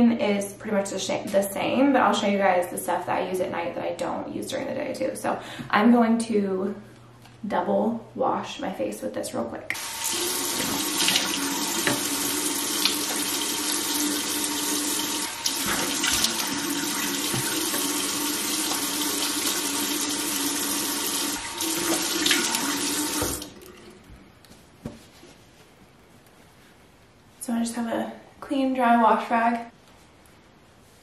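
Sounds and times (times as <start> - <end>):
faucet running into sink: 9.8 - 23.9.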